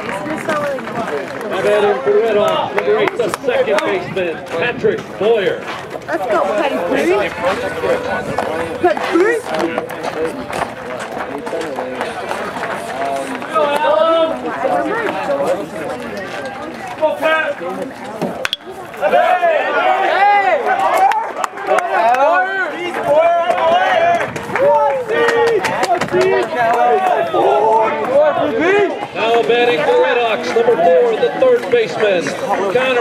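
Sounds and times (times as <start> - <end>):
spectators talking and calling out: 0.0 - 33.0.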